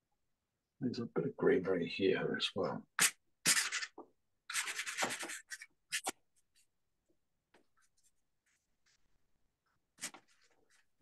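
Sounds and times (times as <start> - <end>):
pastel stick scratching paper: 3.0 - 6.2, 10.0 - 10.8.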